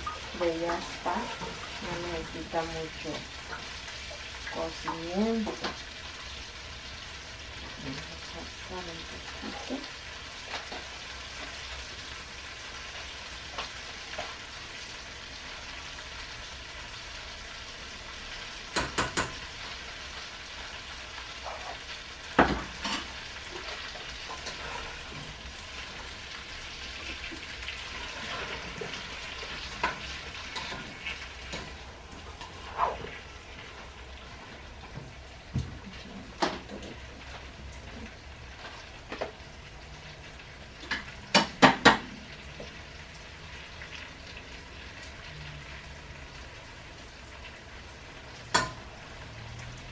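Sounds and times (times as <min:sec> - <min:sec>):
food sizzling in a pan: 0:00.0 - 0:49.9
utensils knocking against pots: 0:18.7 - 0:19.4, 0:48.5 - 0:48.8.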